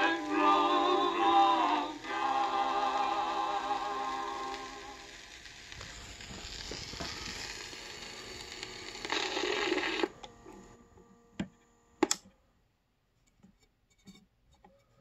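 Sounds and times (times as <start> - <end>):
record surface hiss and crackle: 0.0 - 12.4.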